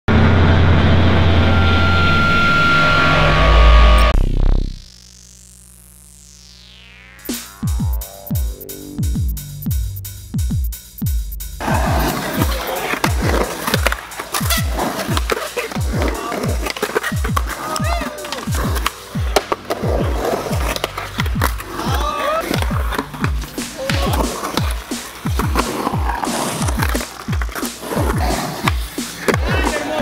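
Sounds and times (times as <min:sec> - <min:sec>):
distorted intro rumble: 0:00.1 - 0:05.0
electronic music with deep bass: 0:00.1 - 0:30.0
skateboard wheels rolling on concrete: 0:11.6 - 0:30.0.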